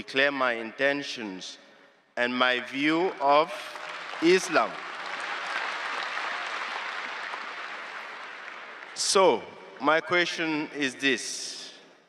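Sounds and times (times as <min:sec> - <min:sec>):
large audience applauding: 0:03.4 - 0:09.4.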